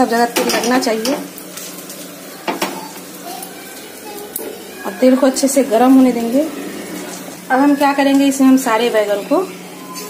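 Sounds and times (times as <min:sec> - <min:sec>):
oil hissing and sizzling: 0:00.0 - 0:10.0.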